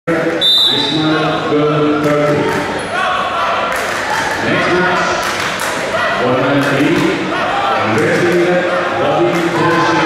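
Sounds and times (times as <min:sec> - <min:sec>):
referee's whistle: 0:00.4 - 0:01.1.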